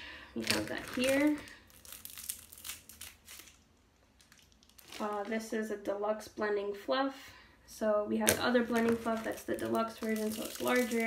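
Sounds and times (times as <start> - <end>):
plastic sleeve crinkling: 0.4 - 5.6, 8.2 - 11.0.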